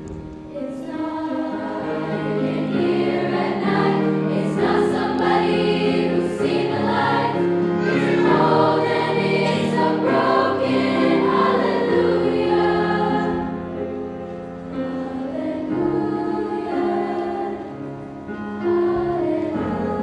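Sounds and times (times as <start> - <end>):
grand piano accompaniment: 0.0 - 20.0
girls choir singing: 0.5 - 13.9, 14.7 - 20.0.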